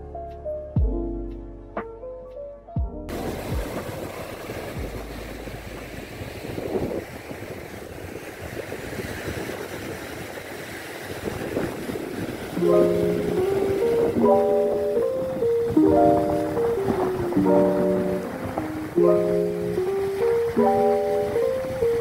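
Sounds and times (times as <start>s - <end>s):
gentle piano music: 0.0s - 3.6s, 12.6s - 22.0s
small waves washing onto beach: 3.1s - 22.0s
wind on microphone: 3.1s - 22.0s.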